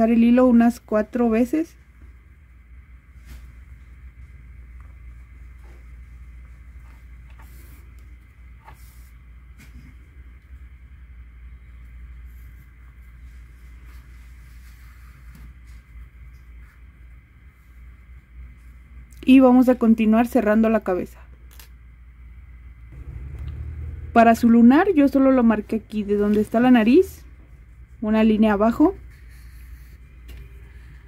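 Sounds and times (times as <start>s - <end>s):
steady low hum: 0.0s - 31.0s
soft yarn rustles: 3.0s - 10.3s, 11.6s - 19.0s.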